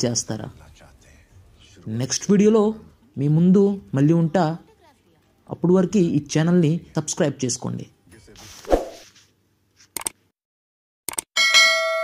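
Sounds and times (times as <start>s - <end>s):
notification bell ding: 11.4s - 12.0s.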